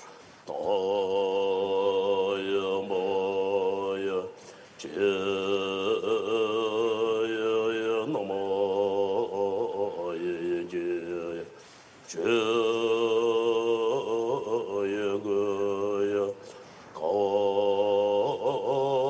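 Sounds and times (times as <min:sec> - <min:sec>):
prayer chanting: 0:00.0 - 0:19.0.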